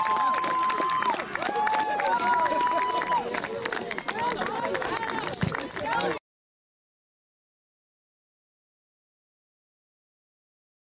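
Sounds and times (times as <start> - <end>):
long held shouts: 0.0 - 3.4
people cheering and shouting: 0.0 - 6.2
babble of voices: 1.2 - 6.2.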